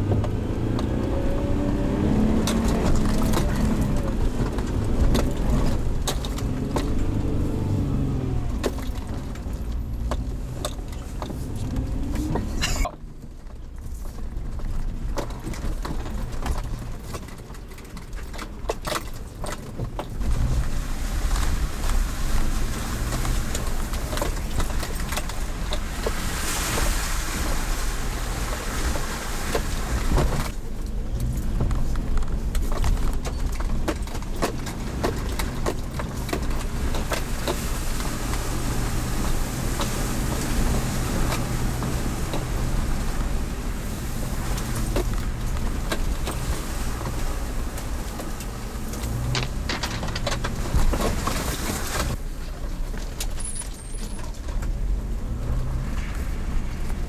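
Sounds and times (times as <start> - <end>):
engine running at low revs: 0.0 - 13.3, 20.2 - 52.3
vehicle body knocks and rattles: 29.5 - 52.2.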